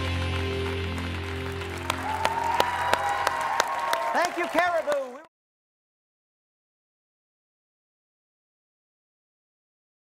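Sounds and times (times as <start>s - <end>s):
audience applauding: 0.0s - 5.3s.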